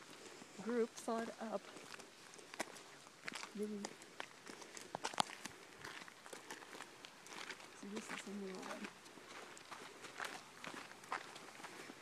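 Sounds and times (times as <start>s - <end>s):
footsteps on gravel trail: 0.0s - 12.0s.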